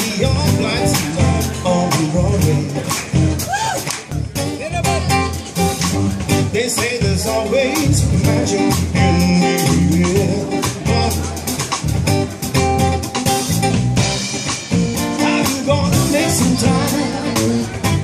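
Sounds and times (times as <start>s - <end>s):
electric bass: 0.0s - 18.0s
guitar: 0.0s - 18.0s.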